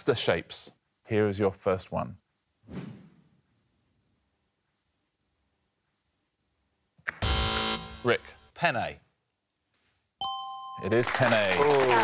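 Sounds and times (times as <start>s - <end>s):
quiz-show buzzer: 7.2s - 8.3s.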